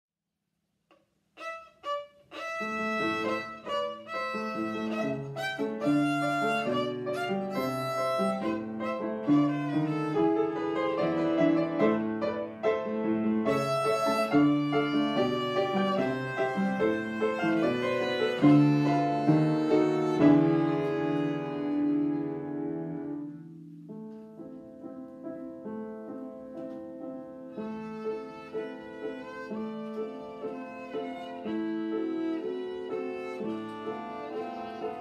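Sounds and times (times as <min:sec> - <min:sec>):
bowed violin melody: 0:01.4 - 0:23.4, 0:27.5 - 0:35.0
upright piano playing: 0:01.4 - 0:35.0.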